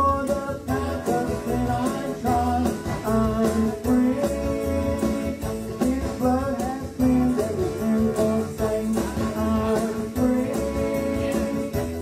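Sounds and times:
electric keyboard with steady beat: 0.0s - 12.0s
man singing lead: 0.0s - 12.0s
woman singing: 6.0s - 12.0s.

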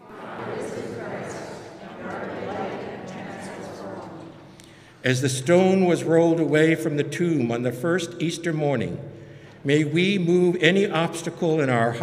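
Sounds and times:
congregation reading aloud in unison: 0.0s - 12.0s.

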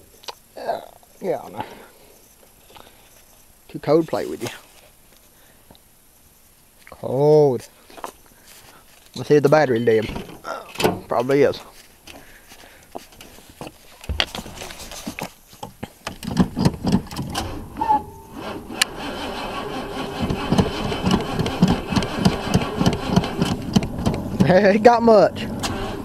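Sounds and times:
thump: 14.1s - 14.8s
car engine cranking by starter: 16.1s - 26.0s.

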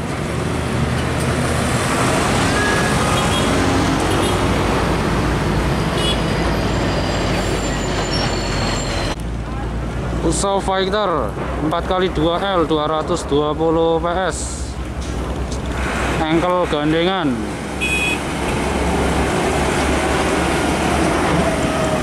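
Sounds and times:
heavy trucks passing: 0.0s - 22.0s.

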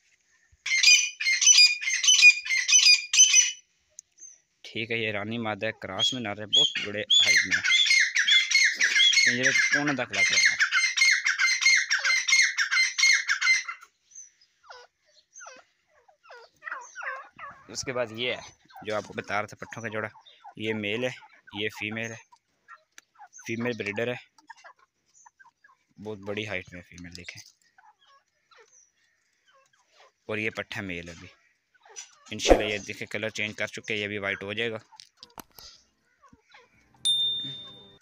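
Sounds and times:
birds calling: 0.4s - 34.8s.

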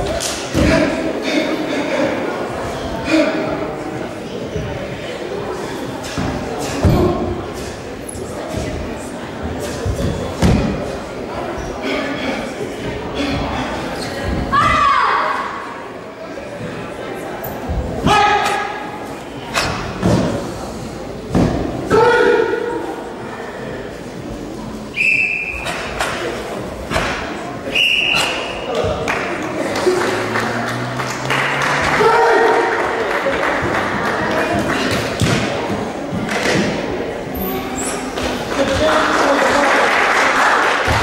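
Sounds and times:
voices: 0.0s - 41.0s
referee's whistle blasts: 24.9s - 25.7s, 27.7s - 28.7s.

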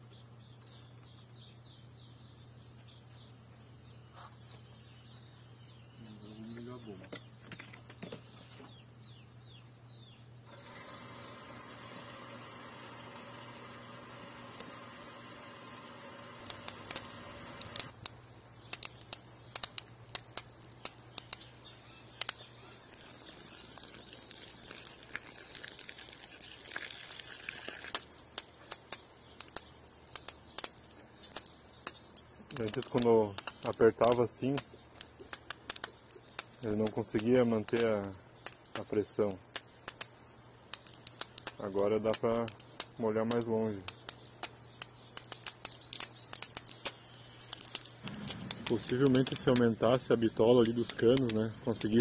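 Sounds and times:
electric water pump humming: 10.5s - 18.0s.

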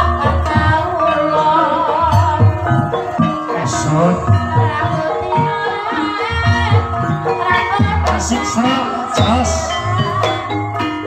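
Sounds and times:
gamelan music: 0.0s - 11.0s
person singing wavering high: 0.0s - 11.0s.

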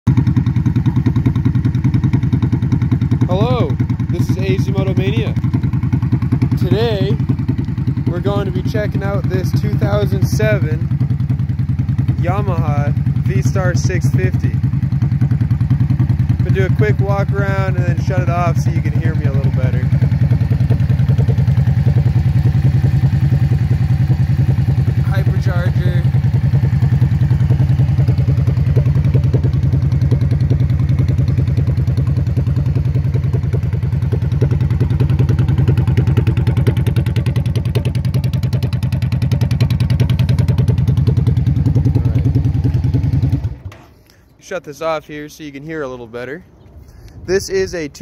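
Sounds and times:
motorcycle engine idling: 0.1s - 44.4s.

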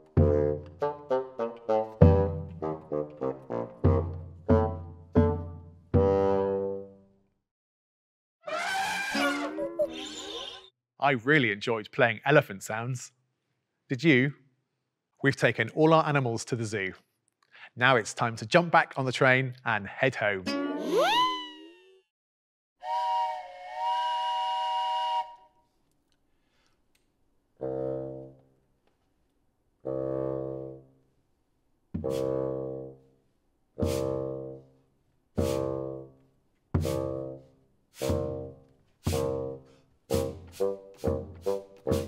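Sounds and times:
low bassoon notes: 0.0s - 7.0s, 27.6s - 28.4s, 29.8s - 30.8s, 32.0s - 33.0s
wooden train whistle: 22.8s - 25.6s, 32.0s - 32.7s.

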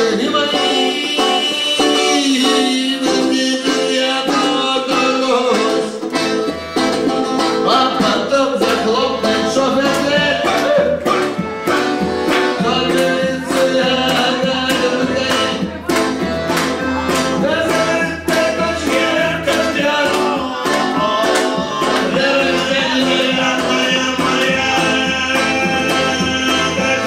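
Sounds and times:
live band music: 0.0s - 27.0s
sliding melody line: 0.1s - 27.0s.

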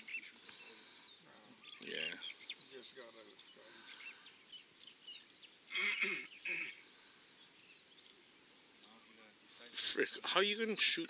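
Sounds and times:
faint bird chirps: 0.0s - 9.7s
man coughing: 5.7s - 6.8s.

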